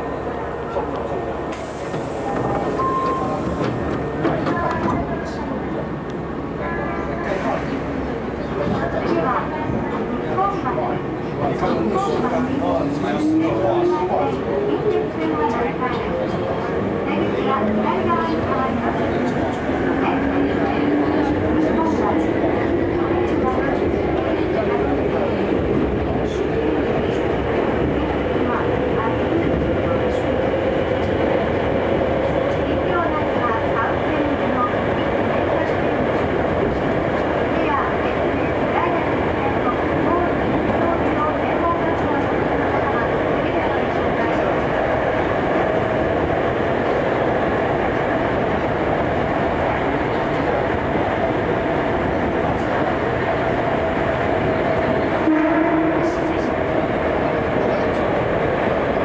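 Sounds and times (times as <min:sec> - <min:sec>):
train rumbling in tunnel: 0:00.0 - 0:59.0.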